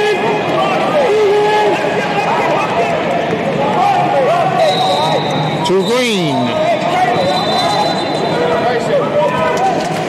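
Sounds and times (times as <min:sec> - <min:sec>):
people calling and shouting: 0:00.6 - 0:10.0.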